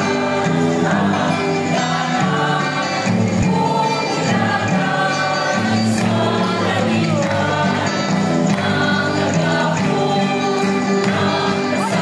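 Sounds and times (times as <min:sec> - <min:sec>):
group singing over music: 0:00.0 - 0:12.0.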